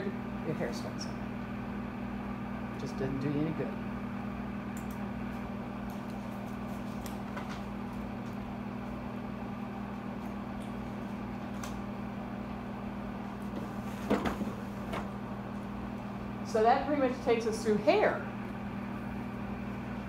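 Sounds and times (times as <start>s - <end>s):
projector hum and cooling fan: 0.0s - 20.0s.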